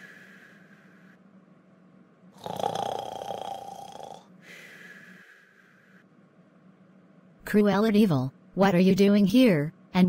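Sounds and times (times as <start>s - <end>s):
loud snore: 2.4s - 4.3s.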